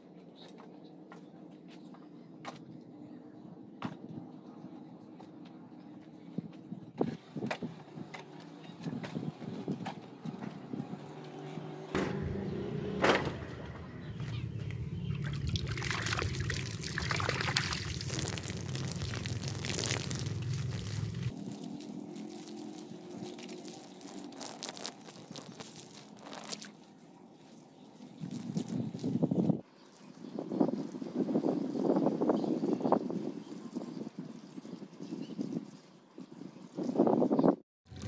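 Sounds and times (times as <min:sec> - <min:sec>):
hose water splashing on soil: 0:14.2 - 0:37.2.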